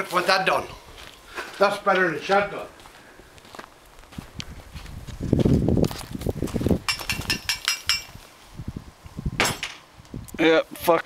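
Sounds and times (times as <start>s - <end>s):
footsteps crunching on gravel: 0.0s - 7.4s
light metallic clinks: 6.9s - 8.2s.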